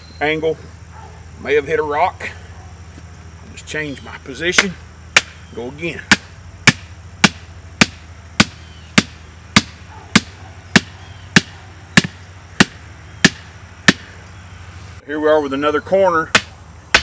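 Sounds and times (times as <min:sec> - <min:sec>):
hammer pounding plastic fence post: 0:04.6 - 0:05.4, 0:06.0 - 0:14.1, 0:16.3 - 0:17.0.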